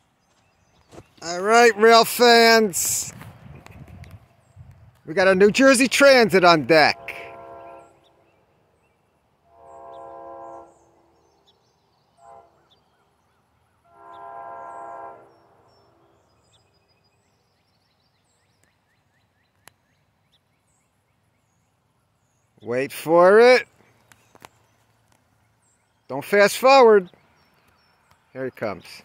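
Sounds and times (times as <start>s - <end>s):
small birds chirping: 0.0s - 1.4s, 7.4s - 29.0s
faint train horn blasts: 6.7s - 8.4s, 9.5s - 11.4s, 12.1s - 12.8s, 13.8s - 16.3s.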